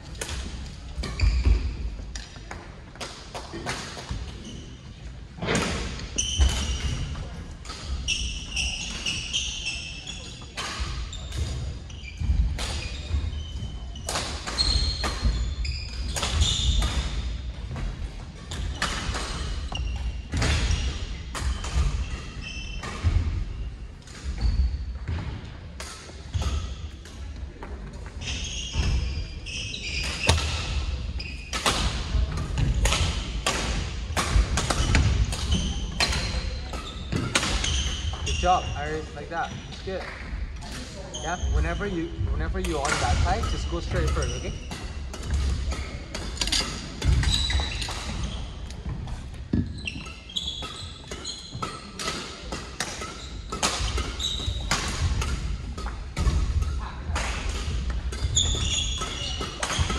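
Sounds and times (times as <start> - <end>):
shoe squeaks: 1.0 - 1.9, 4.3 - 5.0, 6.0 - 7.1, 7.7 - 17.2, 18.5 - 23.1, 24.3 - 24.9, 28.2 - 31.6, 34.6 - 40.0, 41.0 - 52.3, 52.9 - 55.1, 58.1 - 59.9
rackets striking shuttlecocks: 31.5 - 39.1, 41.6 - 59.9.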